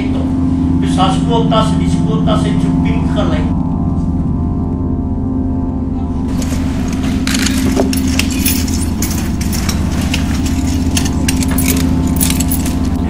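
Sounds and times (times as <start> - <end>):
steady low hum: 0.0 - 13.0
metallic clicks and jingling: 6.3 - 13.0.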